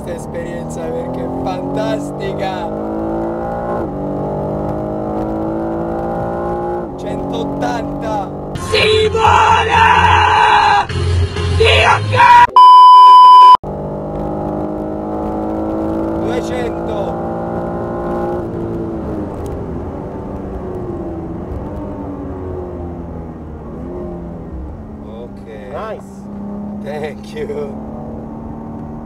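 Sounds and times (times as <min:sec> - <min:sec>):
car engine revving high: 0:00.0 - 0:08.8, 0:12.6 - 0:29.0
man yelling distorted: 0:07.9 - 0:10.9, 0:11.5 - 0:12.6
loud single-pitch beep: 0:12.6 - 0:13.6.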